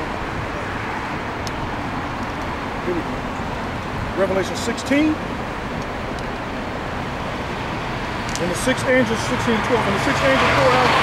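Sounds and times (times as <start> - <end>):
road traffic passing: 0.0 - 11.0.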